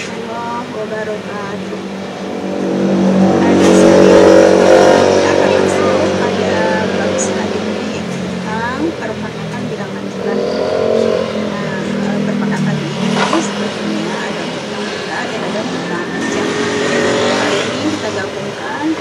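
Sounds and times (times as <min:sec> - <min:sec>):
vehicle engine running: 0:00.0 - 0:19.0
person speaking: 0:03.0 - 0:19.0.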